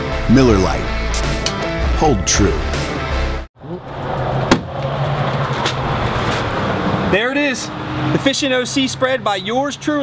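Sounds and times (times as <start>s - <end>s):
music jingle: 0.3s - 2.8s
road traffic: 2.9s - 10.0s.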